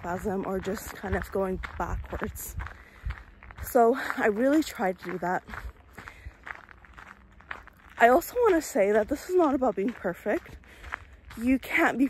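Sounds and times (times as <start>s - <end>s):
quiet footsteps: 0.0s - 12.0s.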